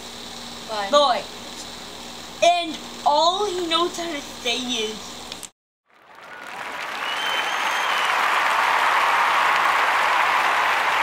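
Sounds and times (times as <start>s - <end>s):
audience applause: 5.9s - 11.0s
whistle in the crowd: 6.1s - 9.6s.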